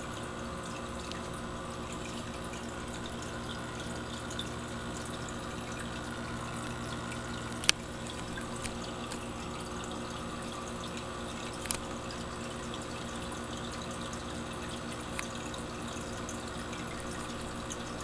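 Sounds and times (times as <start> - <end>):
low electrical hum: 0.0 - 18.0
water trickling: 0.0 - 18.0.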